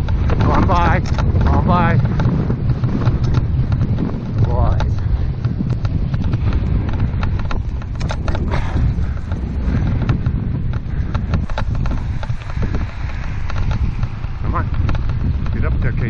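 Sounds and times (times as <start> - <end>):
running footfalls: 0.0 - 15.8
wind rumbling on microphone: 0.0 - 16.0.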